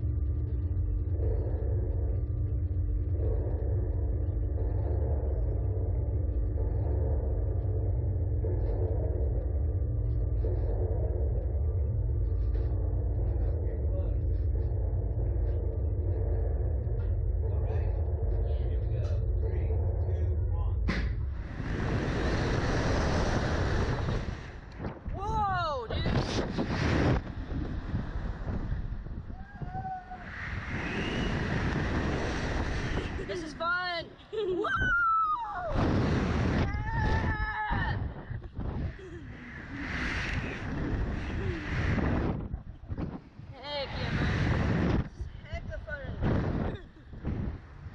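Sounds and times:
low machine hum: 0:00.0 - 0:47.9
wind rushing over microphone: 0:02.0 - 0:47.9
children screaming: 0:29.4 - 0:30.4.

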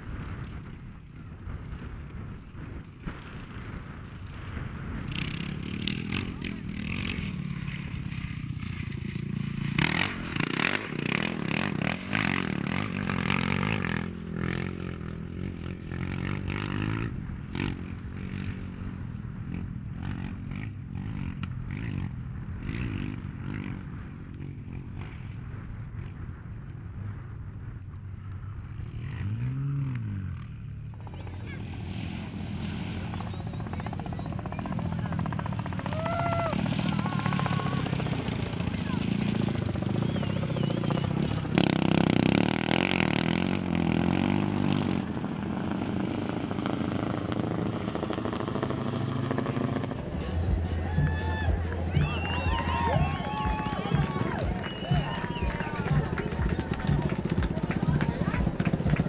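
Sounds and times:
motorcycle engines revving: 0:00.0 - 0:59.0
motorcycle passing by: 0:00.0 - 0:59.0.

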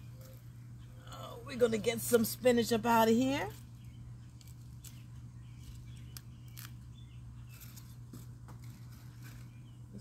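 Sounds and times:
scissors snipping stems: 0:04.3 - 0:06.9.

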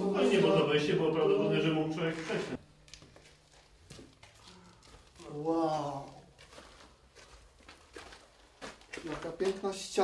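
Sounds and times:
footsteps on stone floor: 0:03.0 - 0:10.0.

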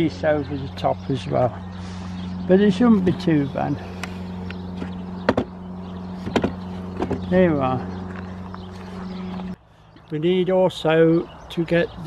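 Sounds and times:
steady low hum: 0:00.0 - 0:10.1
wooden frames knocking: 0:04.8 - 0:05.6, 0:06.2 - 0:07.3.

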